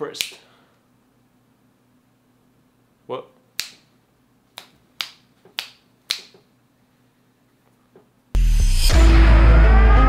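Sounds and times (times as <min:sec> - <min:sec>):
finger snapping: 0:03.6 - 0:03.9, 0:04.5 - 0:06.5.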